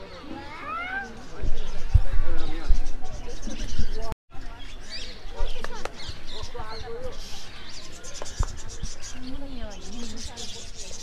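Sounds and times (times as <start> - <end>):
faint background voices: 0.0 - 11.0.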